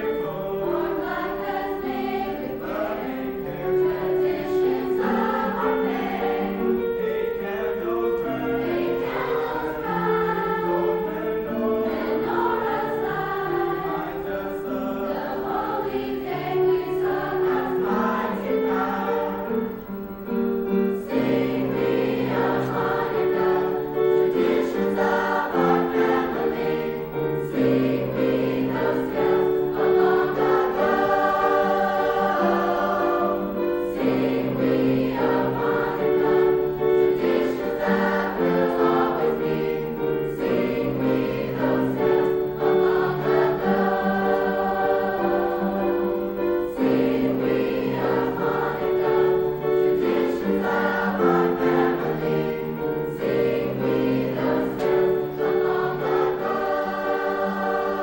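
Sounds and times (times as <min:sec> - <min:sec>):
choir singing in harmony: 0:00.0 - 0:58.0.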